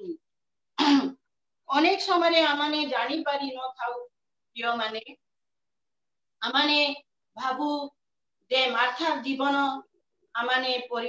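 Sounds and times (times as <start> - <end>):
woman clearing her throat: 0.8 - 1.2
woman speaking: 1.7 - 5.2, 6.4 - 11.0.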